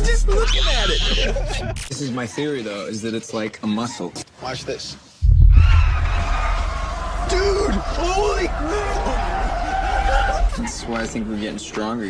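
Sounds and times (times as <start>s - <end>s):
deep boom with low rumble: 5.2s - 8.6s.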